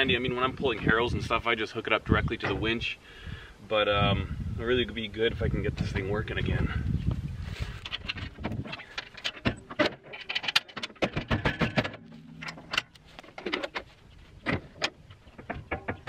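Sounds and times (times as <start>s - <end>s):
metallic clicks and rattles: 7.7s - 16.0s.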